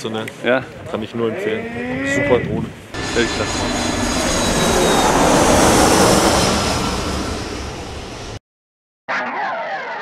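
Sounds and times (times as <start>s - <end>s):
jet airliner flyby: 2.9s - 8.4s.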